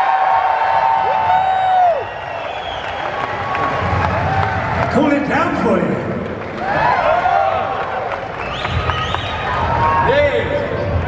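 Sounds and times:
fans shouting woo: 0:00.0 - 0:04.7, 0:06.6 - 0:11.0
crowd cheering and clapping: 0:00.0 - 0:11.0.

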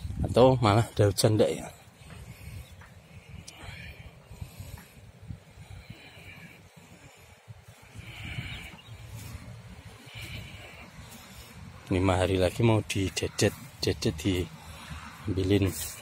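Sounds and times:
wind rumble on microphone: 0:00.0 - 0:01.2, 0:01.9 - 0:16.0
soft rustling hisses: 0:01.5 - 0:16.0.

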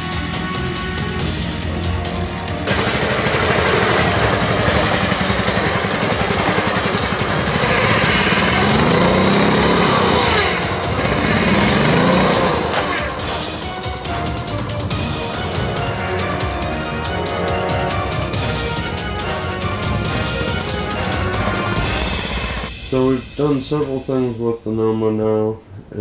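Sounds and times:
lawn mower engine revving: 0:00.0 - 0:15.6, 0:18.0 - 0:22.8
background music: 0:00.0 - 0:26.0.

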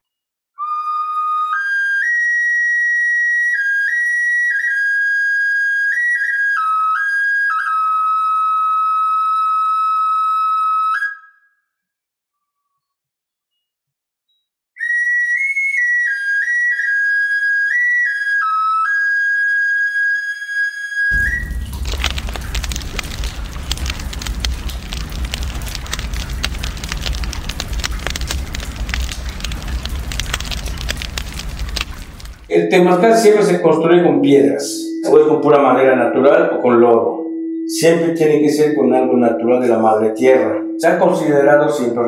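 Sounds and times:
high-pitched flute: 0:00.6 - 0:11.6, 0:14.8 - 0:21.5, 0:34.7 - 0:38.0, 0:40.3 - 0:41.2
rushing noise with deep rumble: 0:21.2 - 0:32.6.

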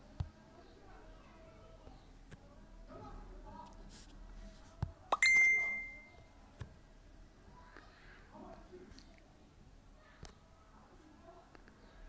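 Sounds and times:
notification ding: 0:05.2 - 0:06.1.

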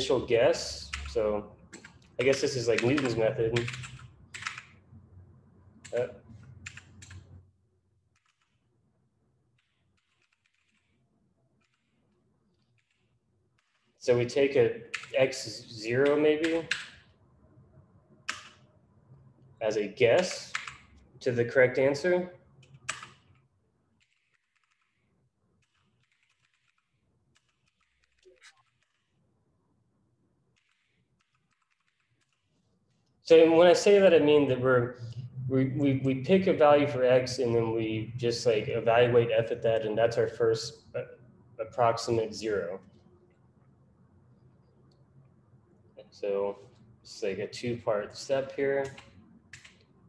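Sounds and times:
computer keyboard keystrokes: 0:00.9 - 0:04.8, 0:06.6 - 0:07.3, 0:08.2 - 0:08.6, 0:09.6 - 0:11.0, 0:18.3 - 0:18.6, 0:20.2 - 0:20.9, 0:22.6 - 0:23.4, 0:24.0 - 0:25.0, 0:25.6 - 0:29.1, 0:30.6 - 0:32.4, 0:48.8 - 0:49.9
keyboard typing clicks: 0:00.9 - 0:04.8, 0:05.8 - 0:07.3, 0:20.2 - 0:21.0, 0:22.6 - 0:23.4, 0:48.8 - 0:49.9.

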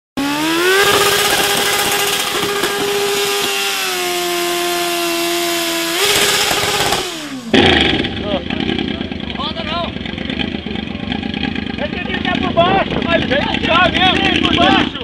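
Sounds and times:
small engine revving: 0:00.2 - 0:09.3.

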